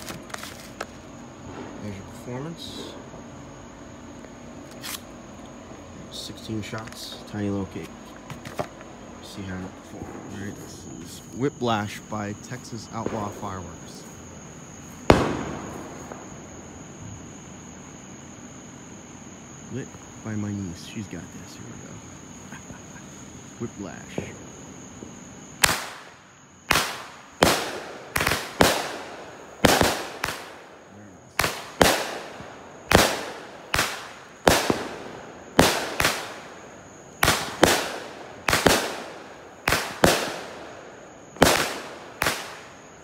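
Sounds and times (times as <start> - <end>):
crickets chirring: 0.0 - 43.0
loud echoing bang: 15.1 - 16.3.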